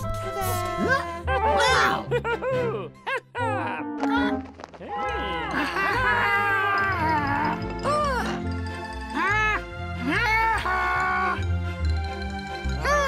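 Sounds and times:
cheerful cartoon music: 0.0 - 13.0.

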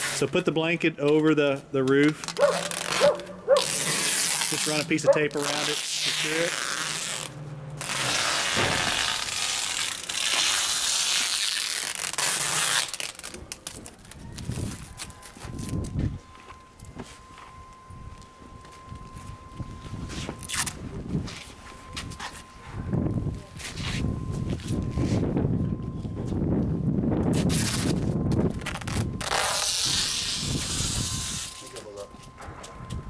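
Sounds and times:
packing tape screeching off roll: 0.0 - 0.3, 2.1 - 15.9, 20.2 - 20.8, 27.3 - 31.8.

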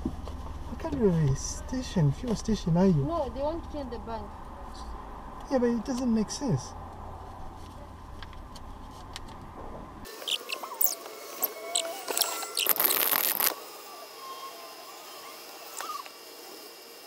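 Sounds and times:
squeaks and clicks: 10.2 - 13.6.

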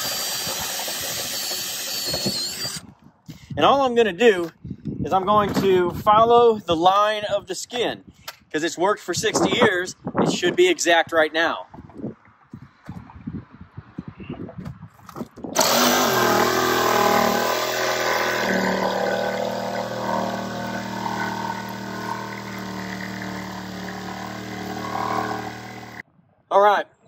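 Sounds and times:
jigsaw cutting metal: 0.0 - 2.8, 15.6 - 26.0.

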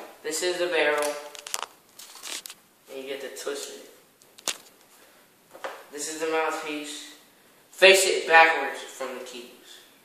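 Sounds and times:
soft rubbing: 1.4 - 2.6.

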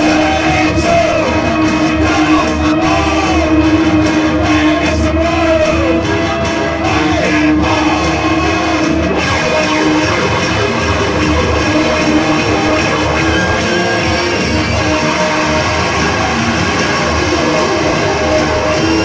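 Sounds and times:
live band with electric guitar: 0.0 - 19.0.

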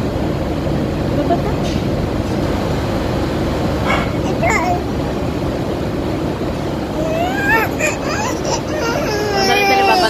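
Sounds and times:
faint voices: 6.9 - 10.0.

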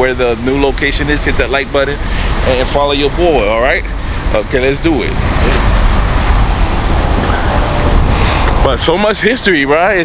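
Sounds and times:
street traffic: 0.0 - 10.0
wind buffeting microphone: 2.0 - 9.5.

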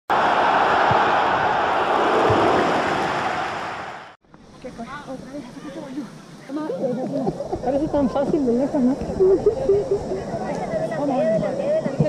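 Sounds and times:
loud rushing noise: 0.1 - 4.2.

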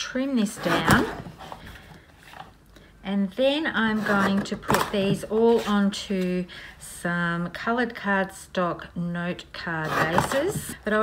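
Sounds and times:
paper trimmer blade rasp: 9.8 - 10.8.

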